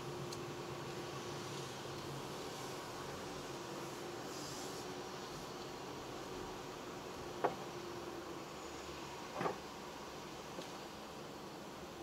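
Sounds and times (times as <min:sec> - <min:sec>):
car cabin hiss and hum: 0:00.0 - 0:12.0
faint tick: 0:10.6 - 0:10.8.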